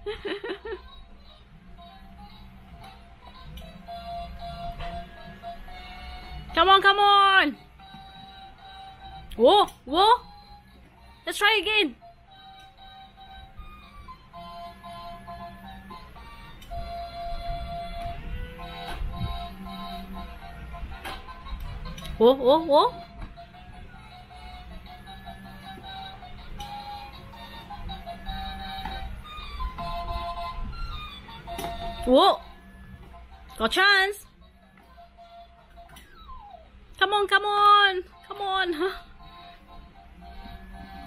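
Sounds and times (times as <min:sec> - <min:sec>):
low steady hum: 0:00.0 - 0:41.0
toy claw machine electronic tune: 0:00.7 - 0:41.0.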